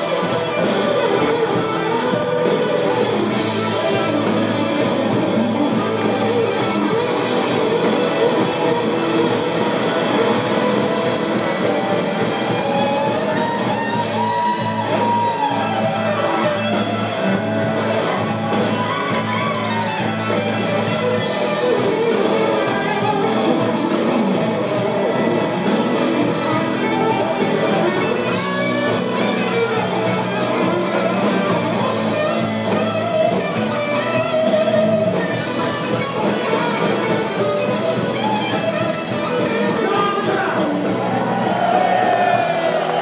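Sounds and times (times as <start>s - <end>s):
bass: 0.0s - 43.0s
drums: 0.0s - 43.0s
electric guitars: 0.0s - 43.0s.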